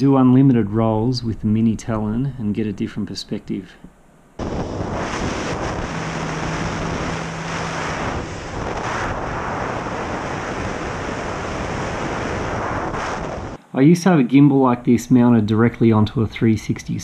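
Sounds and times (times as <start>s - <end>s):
low steady hum: 0.0s - 11.9s
electric motor and propeller: 4.4s - 13.6s
wind rushing over microphone: 4.4s - 13.6s.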